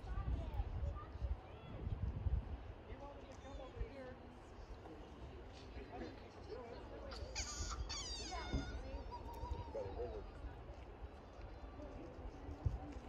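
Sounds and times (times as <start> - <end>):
wind rumble on microphone: 0.0 - 4.0, 7.6 - 13.0.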